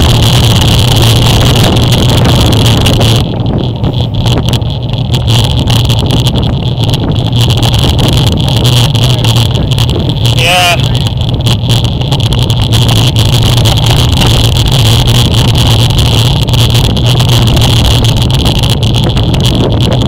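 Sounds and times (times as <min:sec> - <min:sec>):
bicycle tyres on wet asphalt: 0:00.0 - 0:20.0
wind rushing on microphone: 0:00.0 - 0:20.0.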